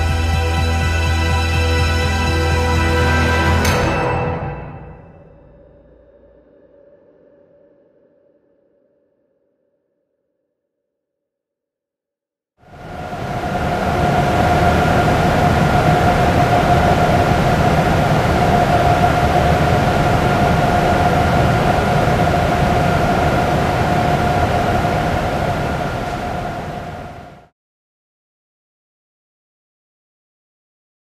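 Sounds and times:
cooling fans rushing hum: 12.7 - 27.4.

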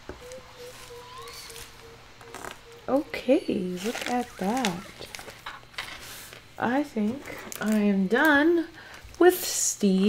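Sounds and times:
woman speaking: 2.9 - 5.2, 6.6 - 10.0.

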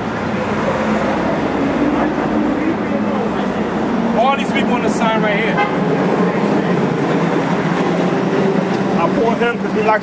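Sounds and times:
heavy vehicle engine hum: 0.0 - 10.0
street traffic rumble: 0.0 - 10.0.

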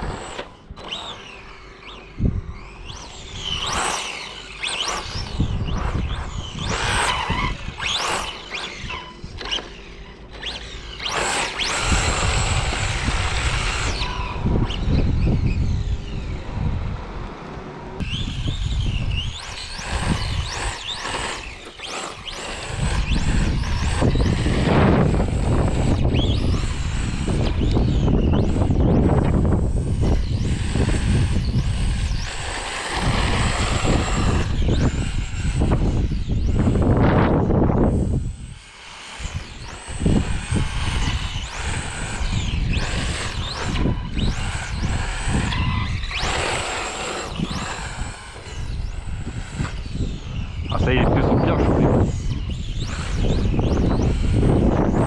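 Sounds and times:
electric motor whine: 0.0 - 55.0
wind buffeting microphone: 0.0 - 55.0.

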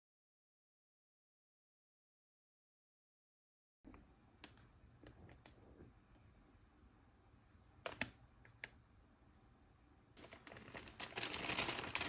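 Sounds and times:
plastic bag crackling: 10.2 - 12.0.

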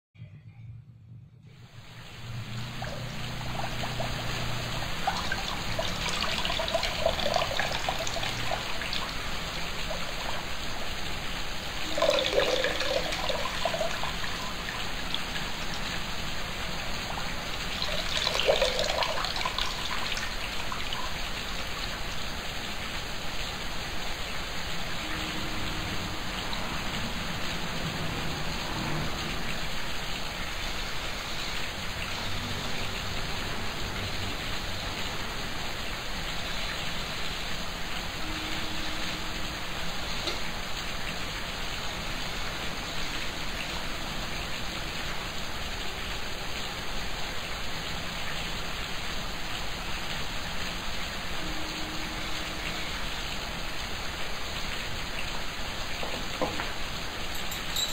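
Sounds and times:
steady hiss: 1.5 - 57.9
water pouring into plastic bucket: 11.9 - 14.1, 17.8 - 19.9.

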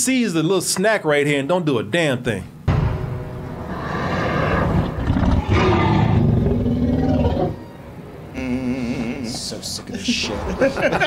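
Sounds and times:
deep dinosaur roar: 3.6 - 7.6
man speaking: 8.4 - 10.5.

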